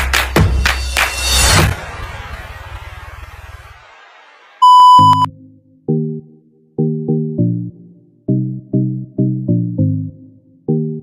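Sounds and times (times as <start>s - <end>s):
steady test-tone beep: 4.6s - 5.3s.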